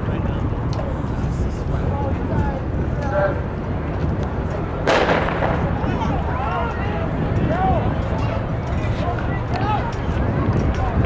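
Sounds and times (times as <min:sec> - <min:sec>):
low outdoor rumble: 0:00.0 - 0:11.0
starting gun crack: 0:04.9 - 0:06.2.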